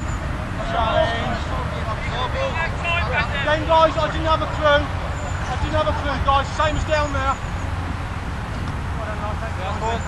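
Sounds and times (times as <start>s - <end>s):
players calling out: 0.5s - 7.9s.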